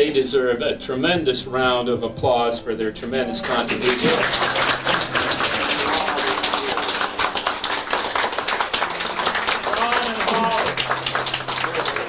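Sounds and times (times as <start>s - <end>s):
people applauding: 3.4s - 12.0s.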